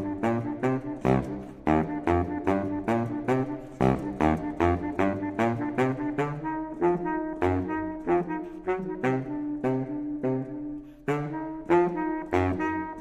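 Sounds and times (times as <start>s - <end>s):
baritone saxophone funk line: 0.0s - 13.0s.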